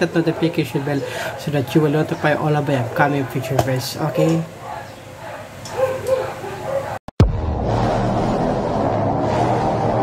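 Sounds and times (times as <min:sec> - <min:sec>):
dog high-pitched calls: 0:04.7 - 0:07.0.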